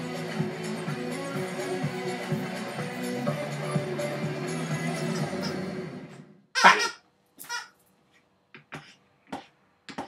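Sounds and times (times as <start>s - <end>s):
background music: 0.0s - 6.2s
squeaky vocal noises: 4.7s - 5.9s, 6.6s - 7.7s.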